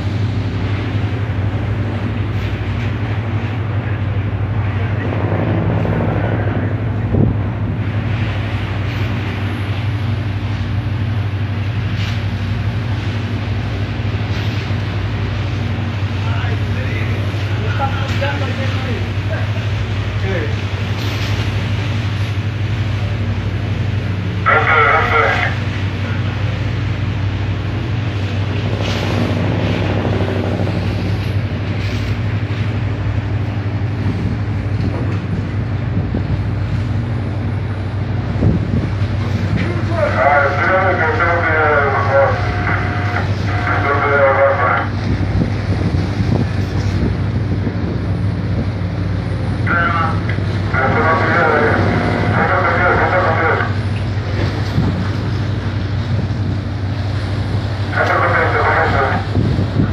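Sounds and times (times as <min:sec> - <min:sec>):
boat engine drone: 0:00.0 - 0:59.9
unintelligible voices: 0:24.4 - 0:26.5, 0:39.5 - 0:45.0, 0:49.6 - 0:54.6, 0:57.9 - 0:59.4.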